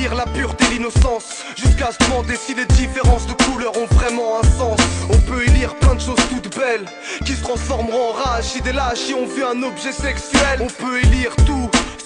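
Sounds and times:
deep bass: 0.0s - 1.1s, 1.7s - 6.4s, 7.2s - 9.0s, 10.0s - 11.9s
rapping over a beat: 0.0s - 12.0s
heavy kick drum: 1.7s - 6.0s, 11.0s - 11.6s.

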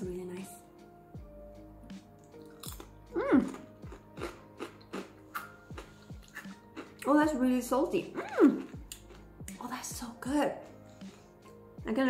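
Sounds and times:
quiet background music: 0.0s - 12.0s
crunching chews on a cracker: 2.3s - 7.1s.

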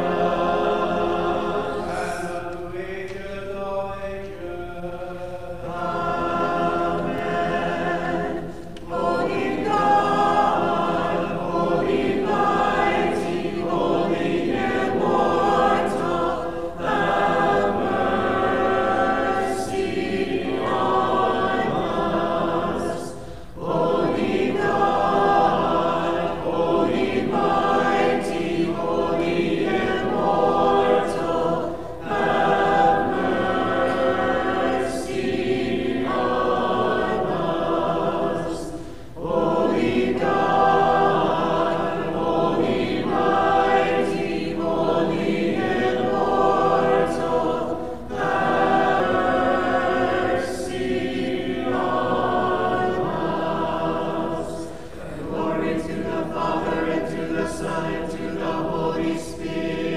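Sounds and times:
choir singing a cappella chant: 0.0s - 59.9s.

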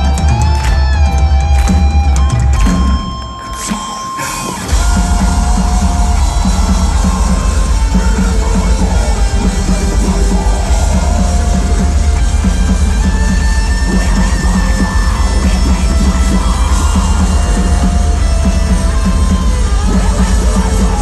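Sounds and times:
heavy metal band playing live: 0.0s - 21.0s.

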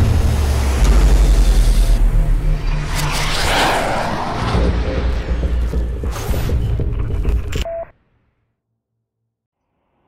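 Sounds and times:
jet flyby whoosh: 2.6s - 5.0s.

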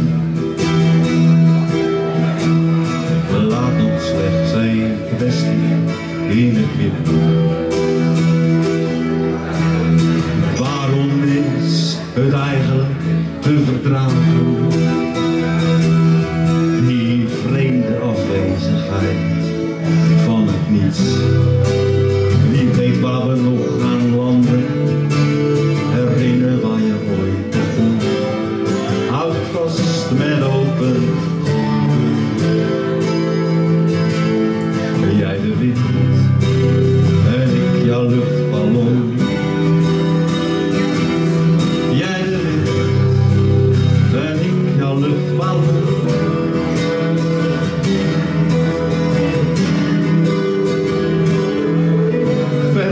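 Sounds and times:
acoustic guitar strumming: 0.0s - 52.9s
electric guitar playing: 0.0s - 52.9s.

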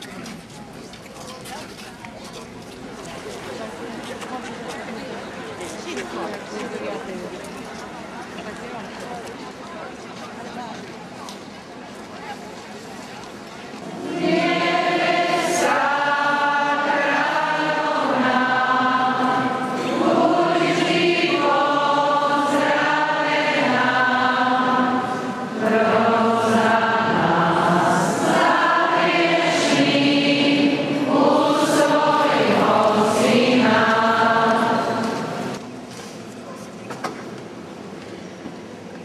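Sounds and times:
group singing a slow hymn: 13.8s - 35.6s.

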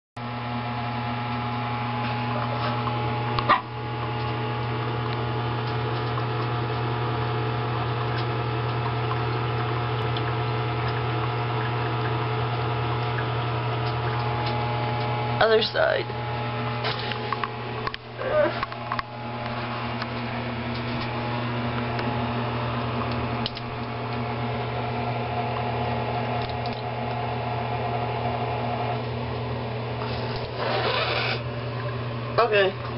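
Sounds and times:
steady low hum: 0.2s - 32.9s.

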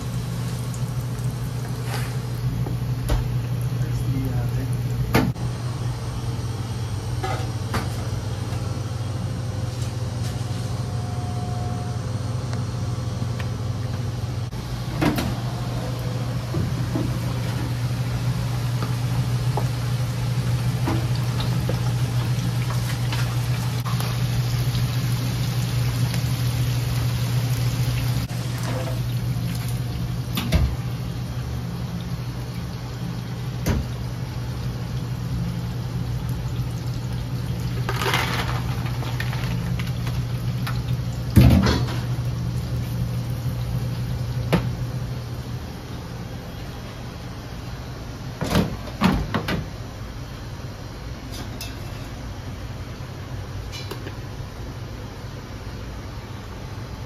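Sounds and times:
fries sizzling in deep fryer: 0.0s - 57.0s
kitchen machine hum: 0.0s - 57.0s.

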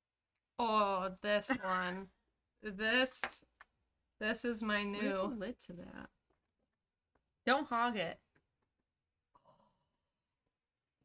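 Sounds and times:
woman speaking: 0.6s - 2.1s, 4.2s - 6.1s, 7.5s - 8.2s.

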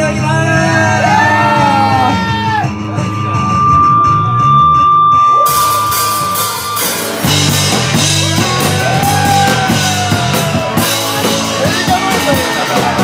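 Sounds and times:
guitar: 0.0s - 13.0s
low bass line: 0.0s - 13.0s
cymbals: 2.4s - 13.0s
high held note: 2.6s - 8.6s.

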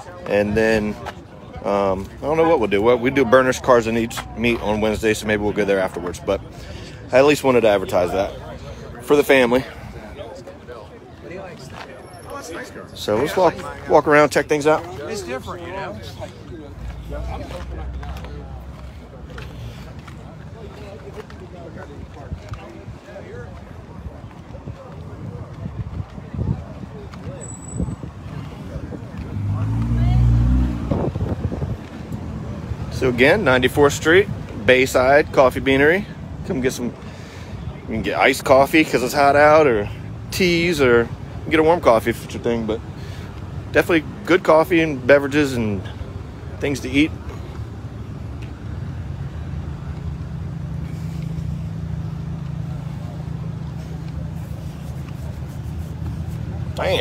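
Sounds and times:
murmur of voices: 0.0s - 57.0s
car engine passing by: 27.2s - 33.4s.

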